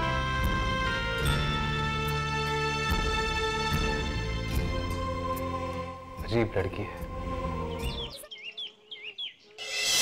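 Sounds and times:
birds chirping: 0:06.9 - 0:09.8.

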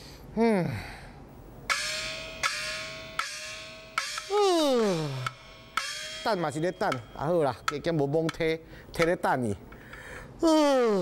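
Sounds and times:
small opera gong strokes: 0:01.7 - 0:08.0
person sighing loudly: 0:09.9 - 0:11.0.

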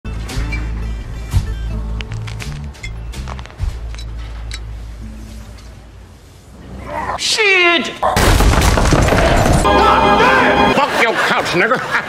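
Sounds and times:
film soundtrack music: 0:00.1 - 0:07.2.

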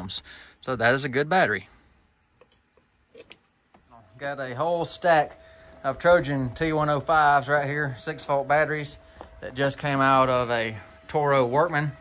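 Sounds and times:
high-pitched insects trilling: 0:00.0 - 0:12.0.

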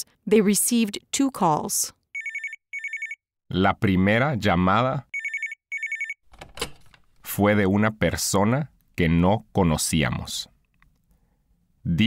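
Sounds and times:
telephone ringing: 0:02.2 - 0:03.2, 0:05.2 - 0:06.4.

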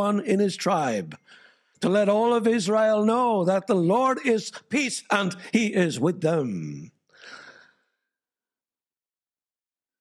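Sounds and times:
man breathing: 0:01.2 - 0:01.8, 0:07.1 - 0:08.0.

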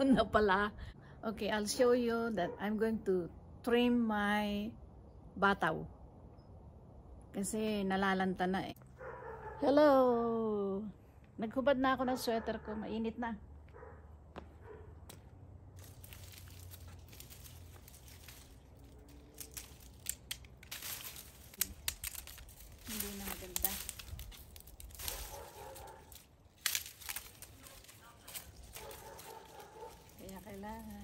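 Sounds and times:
dry leaves rustling and crackling: 0:15.6 - 0:31.0
stems snapping: 0:15.8 - 0:31.0.

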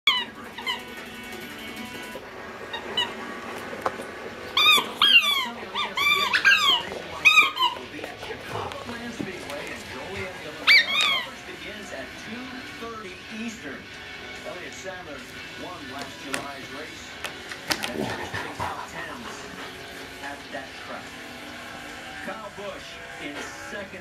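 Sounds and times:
dog whimpering: 0:00.0 - 0:01.1, 0:02.7 - 0:03.4, 0:04.5 - 0:08.9, 0:10.5 - 0:11.4.

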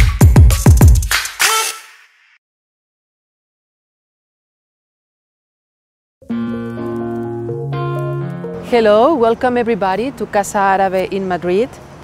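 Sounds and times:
electronic chord stab: 0:06.2 - 0:09.0.

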